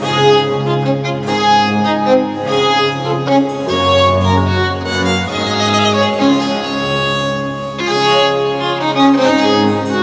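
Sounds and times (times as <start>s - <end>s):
baroque violin melody: 0.0s - 10.0s
sustained continuo bass: 0.0s - 10.0s.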